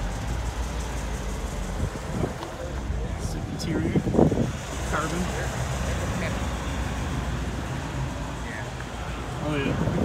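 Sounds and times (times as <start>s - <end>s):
low vehicle rumble: 0.0s - 10.0s.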